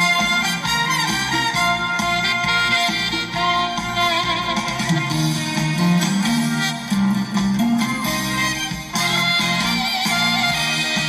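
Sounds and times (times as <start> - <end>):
instrumental backing track: 0.0 - 11.0.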